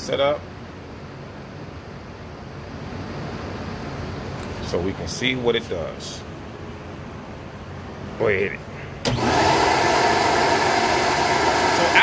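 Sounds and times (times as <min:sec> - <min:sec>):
vacuum motors running: 0:09.0 - 0:12.0.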